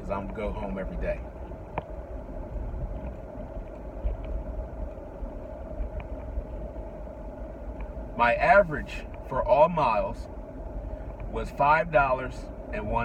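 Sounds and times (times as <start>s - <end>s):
car interior engine rumble: 0.0s - 13.0s
constant hum: 0.0s - 13.0s
faint ticks: 2.9s - 7.0s, 7.7s - 8.0s, 11.0s - 11.4s.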